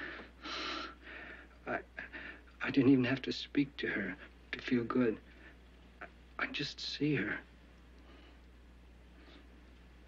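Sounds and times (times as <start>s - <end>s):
man breathing: 0.0s - 2.6s
man speaking: 2.6s - 5.2s.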